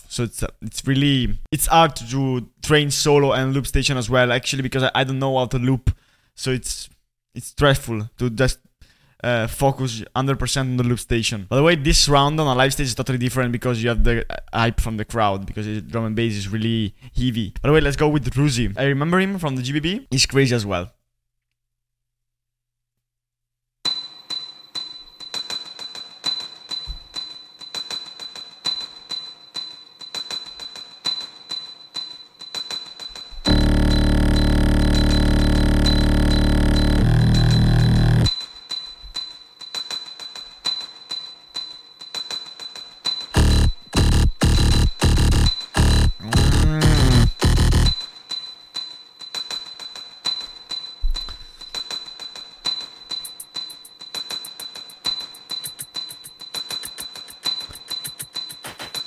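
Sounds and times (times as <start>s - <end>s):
high steady tone: 33.4s - 38.3s, 43.4s - 48.0s, 53.2s - 59.0s
bass-heavy sustained layer: 33.5s - 38.3s, 43.4s - 48.0s
choppy stuttered hits: 33.5s - 38.3s, 43.4s - 48.0s, 54.4s - 59.0s
light fast ticking pattern: 33.5s - 38.3s, 43.4s - 48.0s, 53.2s - 59.0s
looped vocal beatbox: 43.4s - 48.0s.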